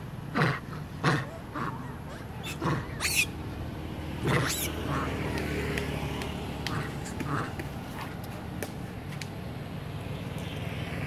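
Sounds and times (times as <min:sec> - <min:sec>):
monkey grunting: 0:00.3 - 0:03.3, 0:04.2 - 0:05.4, 0:06.6 - 0:08.2.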